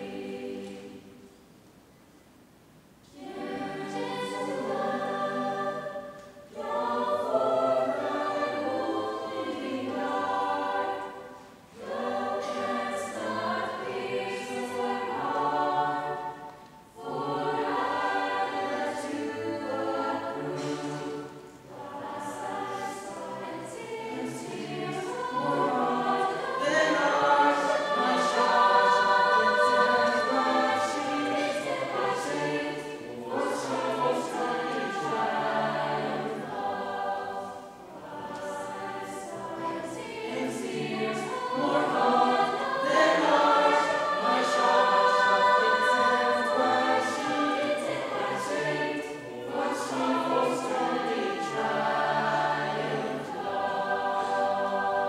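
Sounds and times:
mixed choir singing: 0.0 - 1.4, 3.1 - 55.0.

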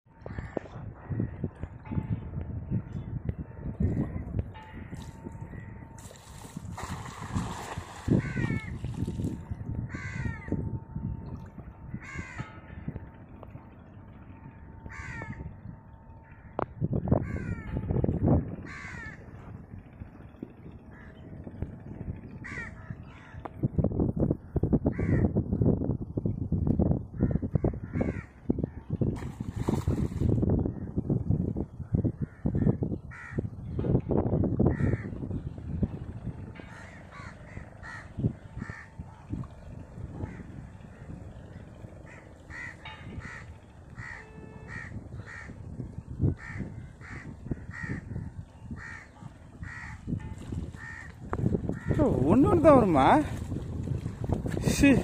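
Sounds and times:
low rumbling noise: 0.1 - 55.0
birds calling: 36.6 - 53.2.

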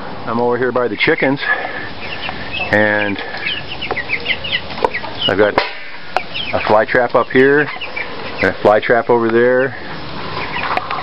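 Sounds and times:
chicks peeping: 0.3 - 11.0.

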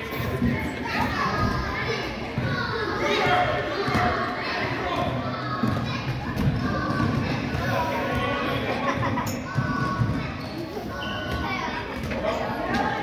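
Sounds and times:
children shouting: 0.8 - 13.0.

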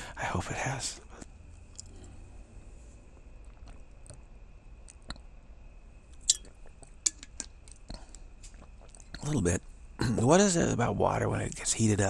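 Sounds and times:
person sipping and swallowing water: 2.7 - 5.3, 6.2 - 9.3
wet mouth clicks: 3.2 - 4.2, 4.8 - 5.3, 6.2 - 9.3.

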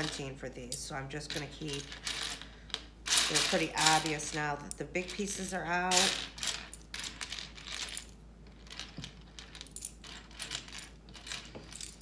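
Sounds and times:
plastic toy bricks clattering: 3.1 - 12.0.

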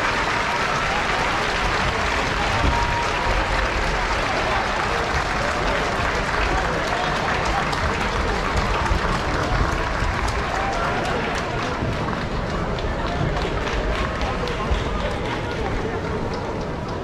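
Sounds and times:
crowd murmur: 0.0 - 17.0
hand claps: 0.0 - 17.0.

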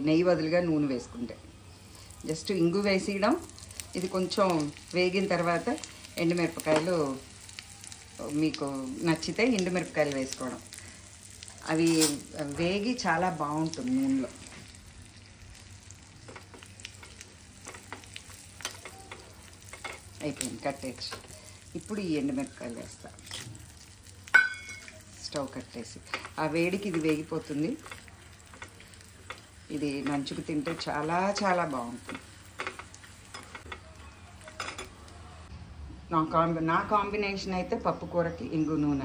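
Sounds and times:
oil sizzling in a pan: 0.0 - 35.5
spoon scraping a steel pan: 11.8 - 12.3
spoon stirring in metal pan: 16.2 - 21.7, 25.9 - 35.0
spoon clinking against metal: 24.3 - 25.0.

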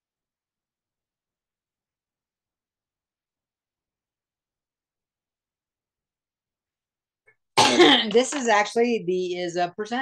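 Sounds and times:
man coughing: 7.6 - 8.1.

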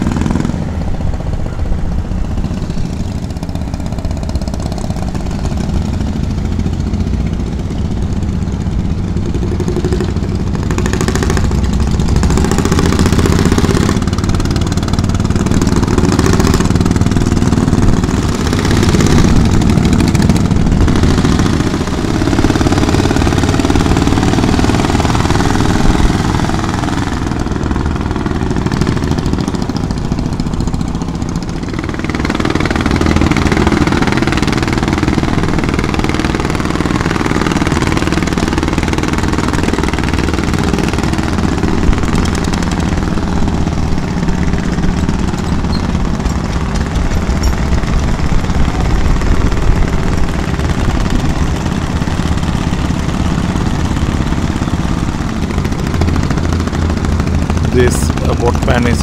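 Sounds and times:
boat engines running: 0.0 - 59.0.

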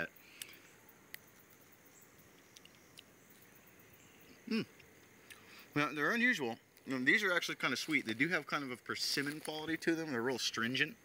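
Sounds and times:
faint outdoor hiss: 0.0 - 11.0.

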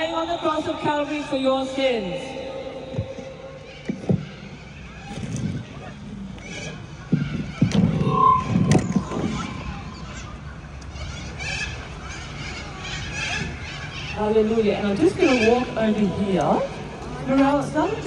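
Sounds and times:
indistinct voices of passers-by: 0.0 - 18.0
brief high tone: 7.9 - 10.4.

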